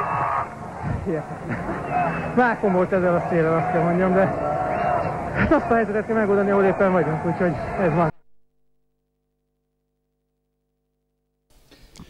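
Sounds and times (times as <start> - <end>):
sports commentator shouting: 1.1 - 8.1.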